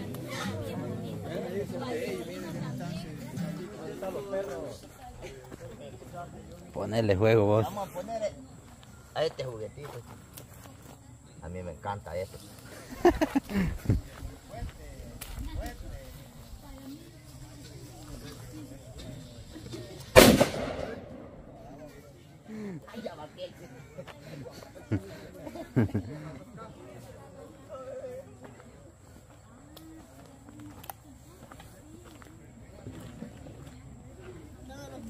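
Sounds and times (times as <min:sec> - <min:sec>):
faint talking voices: 0:00.0 - 0:35.0.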